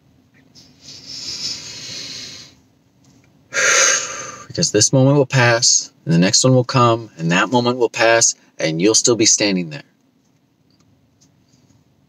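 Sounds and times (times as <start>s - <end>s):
person breathing deeply: 0.6s - 2.6s, 3.5s - 4.5s.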